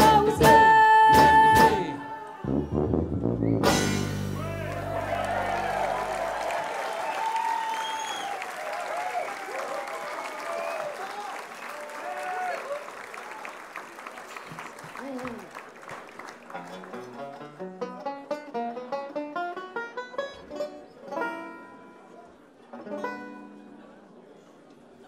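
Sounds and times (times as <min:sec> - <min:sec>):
band's low final chord: 0:02.6 - 0:06.1
audience applauding and cheering: 0:04.3 - 0:17.2.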